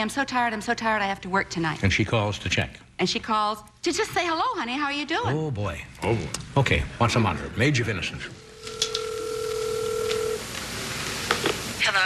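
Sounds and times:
telephone ring tone: 0:08.4 - 0:10.5.

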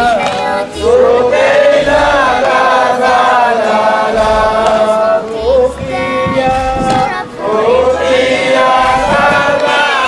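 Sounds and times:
lead voice over microphone: 0:00.0 - 0:10.0
men chanting in unison: 0:00.0 - 0:10.0.

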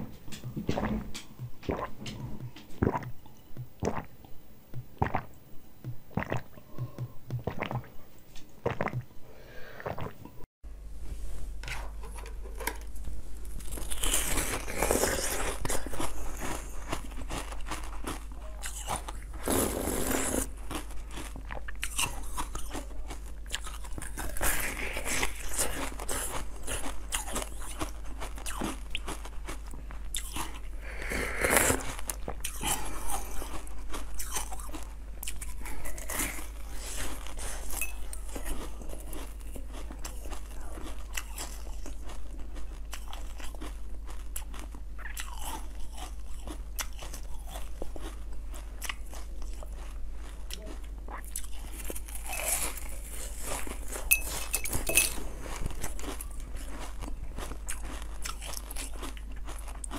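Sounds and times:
chewing crunchy ice: 0:00.3 - 0:04.2, 0:04.8 - 0:07.9, 0:13.5 - 0:59.9.

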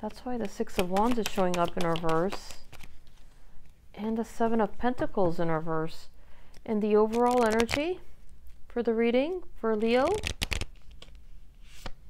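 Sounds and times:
cards shuffling: 0:00.1 - 0:03.4, 0:06.5 - 0:07.8, 0:10.0 - 0:12.0.

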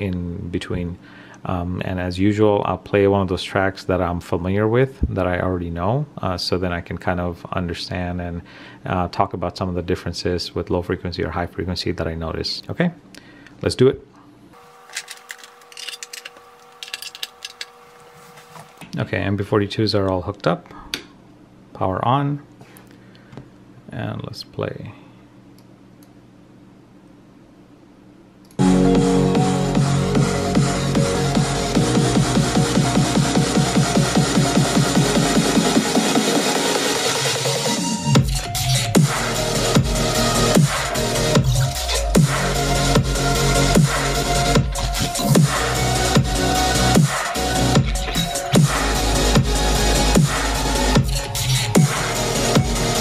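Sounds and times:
speaker wires clicking and rattling: 0:14.9 - 0:17.8
electronic music through speakers: 0:28.6 - 0:53.0.

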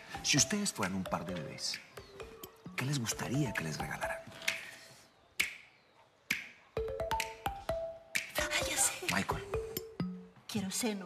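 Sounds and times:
percussive clicks: 0:04.2 - 0:04.8, 0:05.4 - 0:05.7, 0:06.3 - 0:09.4.

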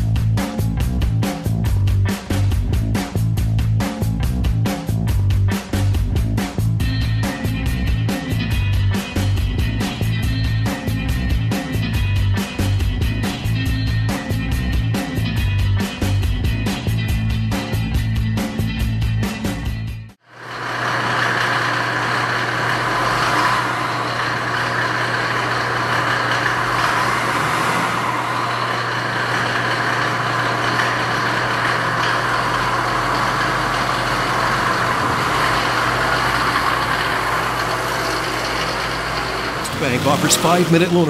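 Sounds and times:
engine idling: 0:20.3 - 0:41.0.

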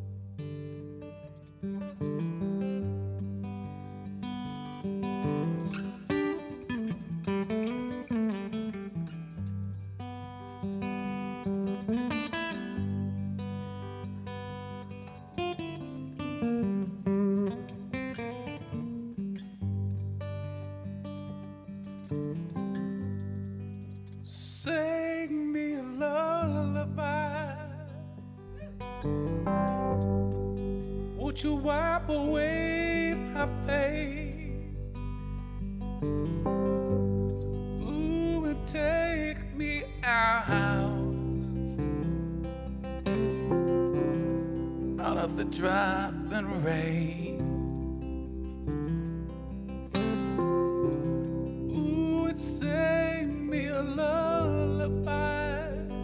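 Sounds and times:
strummed acoustic guitar: 0:00.0 - 0:56.0
man singing with vibrato: 0:24.3 - 0:28.2, 0:31.2 - 0:34.8, 0:37.8 - 0:41.4, 0:45.0 - 0:47.4, 0:51.7 - 0:56.0
long low bass notes: 0:28.7 - 0:48.9, 0:50.2 - 0:56.0.

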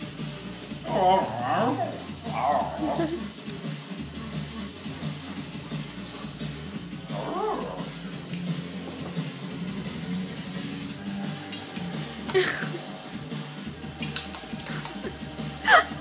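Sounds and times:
background music: 0:00.0 - 0:16.0
dog whining: 0:00.8 - 0:03.3, 0:07.0 - 0:08.0.

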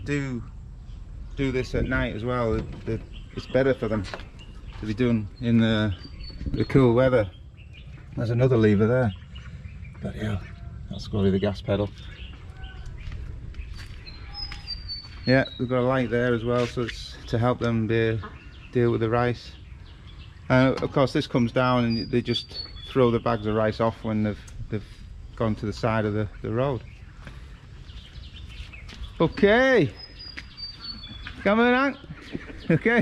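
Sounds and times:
low background rumble: 0:00.0 - 0:29.2
faint bird chirps: 0:00.0 - 0:33.0.

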